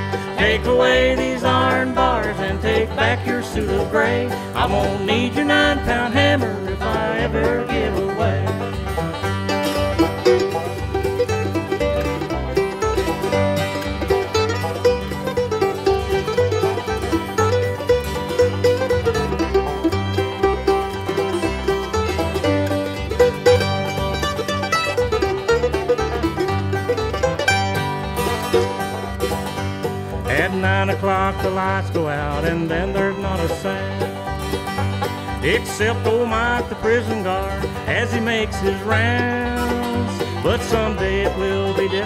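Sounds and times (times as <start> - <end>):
banjo picking: 0.0 - 42.0
bass and rhythm backing: 0.0 - 42.0.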